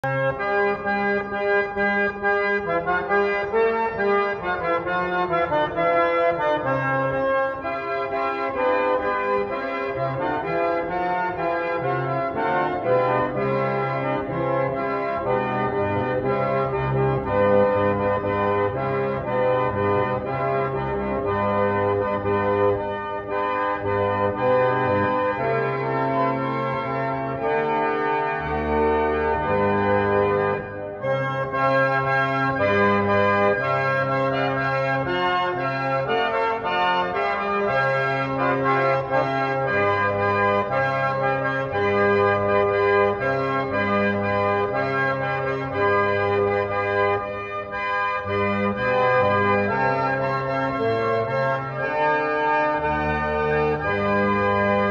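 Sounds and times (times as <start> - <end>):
reed organ playing chords: 0.0 - 54.9.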